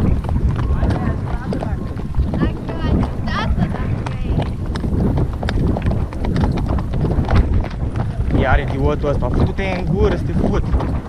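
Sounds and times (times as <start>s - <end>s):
horses' hooves on dirt: 0.0s - 11.0s
steady low rumble: 0.0s - 11.0s.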